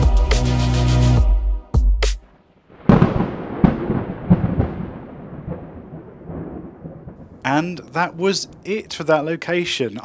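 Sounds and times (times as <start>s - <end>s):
thunder cracking and rumbling: 2.7s - 10.0s.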